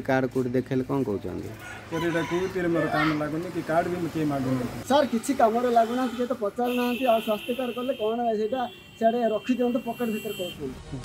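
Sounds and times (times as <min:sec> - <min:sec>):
man talking: 0:00.0 - 0:11.0
rooster crowing: 0:01.6 - 0:03.2.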